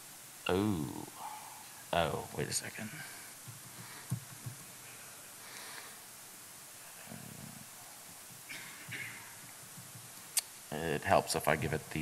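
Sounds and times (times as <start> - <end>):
room hiss: 0.0 - 12.0
soft breathing noises: 1.0 - 1.9, 2.6 - 10.1.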